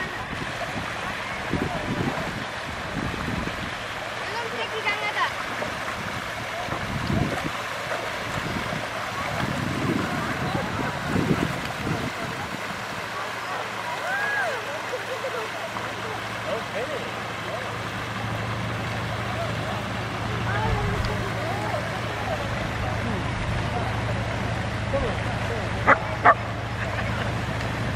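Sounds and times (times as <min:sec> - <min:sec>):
distant chatter of people: 0:00.0 - 0:27.9.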